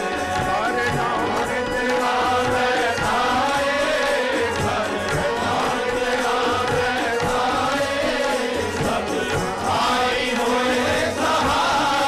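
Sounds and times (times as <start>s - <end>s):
group chanting in unison: 0.0s - 12.0s
harmonium: 0.0s - 12.0s
tabla: 0.0s - 12.0s.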